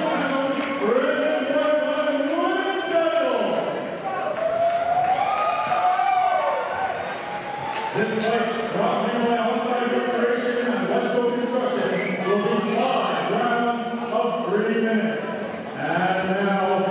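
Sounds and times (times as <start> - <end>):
man's voice over public address: 0.0 - 4.0, 7.9 - 16.9.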